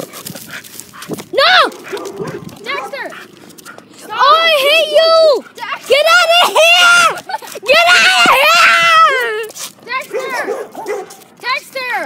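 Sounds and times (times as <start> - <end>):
dogs yelping barks: 0.0 - 8.1, 9.1 - 11.4.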